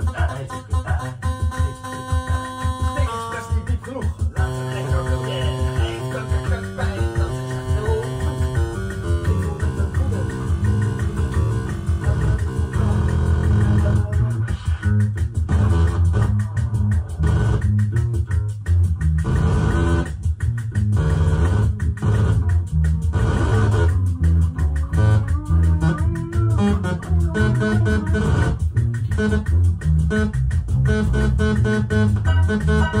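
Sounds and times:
electronic synthesizer music: 0:00.0 - 0:33.0.

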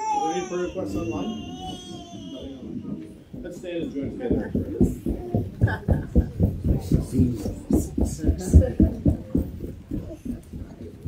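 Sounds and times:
muffled voices: 0:00.0 - 0:11.0.

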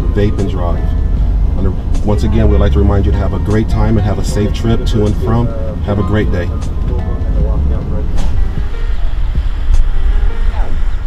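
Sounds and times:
car driving rumble: 0:00.0 - 0:11.0
faint voices: 0:01.6 - 0:11.0.

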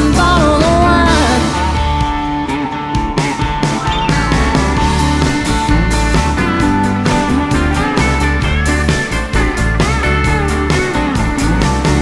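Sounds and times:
country-rock band playing live: 0:00.0 - 0:12.0
guitars: 0:00.0 - 0:12.0
steady drum beat: 0:00.0 - 0:12.0.

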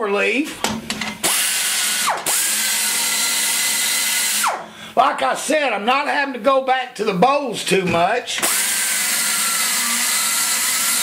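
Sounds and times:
pneumatic grinder whining: 0:01.1 - 0:04.7, 0:08.4 - 0:11.0.

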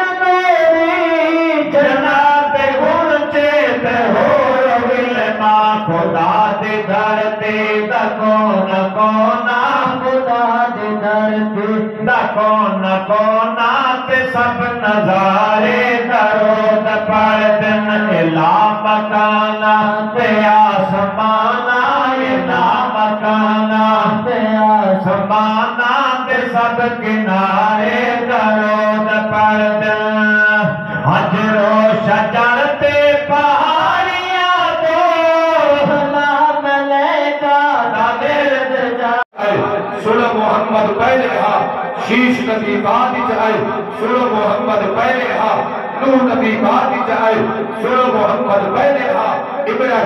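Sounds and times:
men chanting devotional song: 0:00.0 - 0:50.0.

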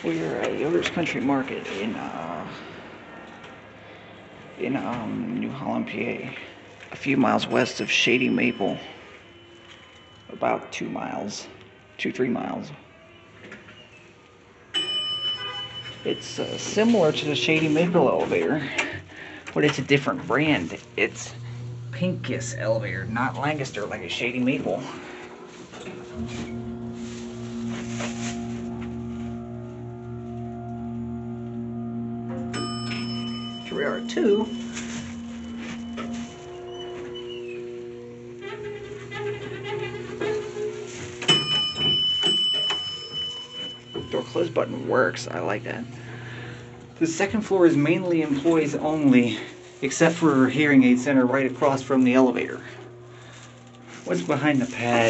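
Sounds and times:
elevator chime: 0:07.0 - 0:11.8, 0:12.4 - 0:55.0
steady high-pitched tone: 0:07.2 - 0:11.6, 0:14.8 - 0:19.0, 0:20.0 - 0:55.0.

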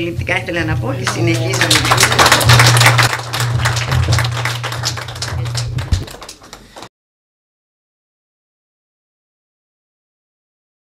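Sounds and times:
audience applause: 0:01.1 - 0:06.9.

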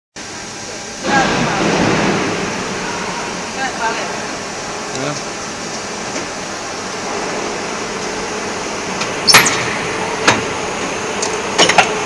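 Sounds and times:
machine humming: 0:00.2 - 0:12.0.

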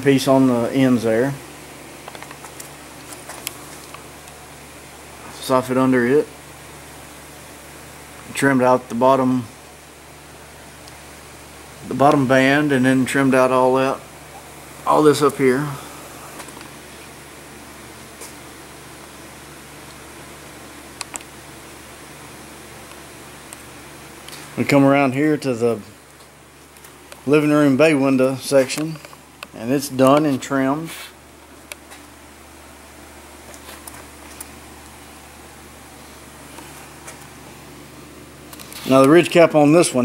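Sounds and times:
electric fan hissing and humming: 0:00.0 - 0:40.0.

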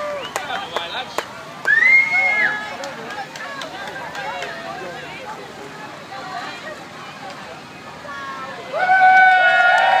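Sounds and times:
people talking indistinctly: 0:00.2 - 0:08.7.

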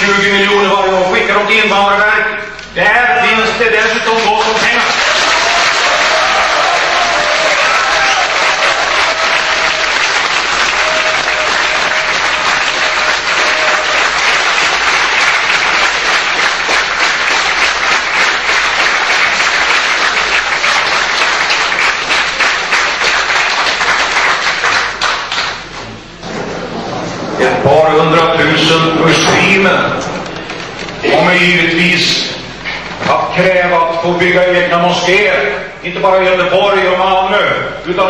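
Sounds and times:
audience applauding: 0:04.2 - 0:25.7.

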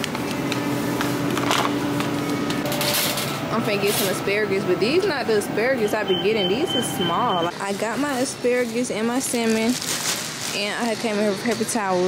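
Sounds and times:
plastic rustle: 0:07.6 - 0:11.8.

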